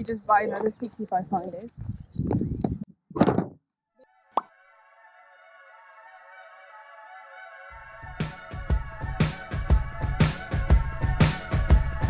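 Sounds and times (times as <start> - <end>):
held synthesizer chord: 4.2 - 12.0
electronic music: 5.1 - 12.0.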